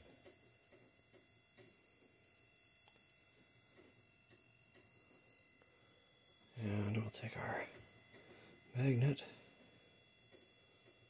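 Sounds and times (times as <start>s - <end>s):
faint high-pitched tones: 0.0s - 11.0s.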